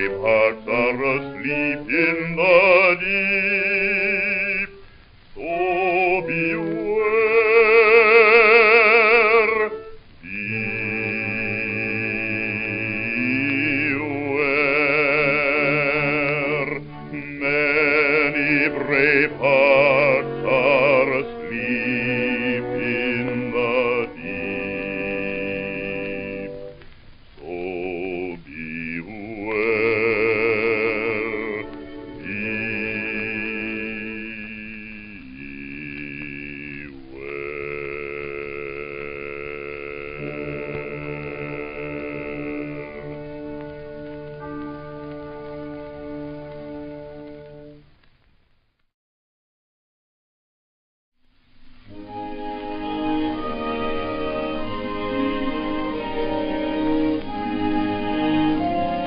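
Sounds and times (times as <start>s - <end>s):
old phonograph recording of song: 0.0s - 48.9s, 51.2s - 59.0s.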